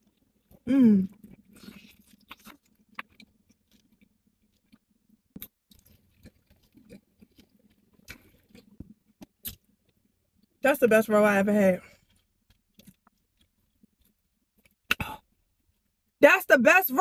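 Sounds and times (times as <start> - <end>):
chewing mouth clicks and smacks: 1.1 - 4.8, 5.4 - 10.0, 11.9 - 15.1.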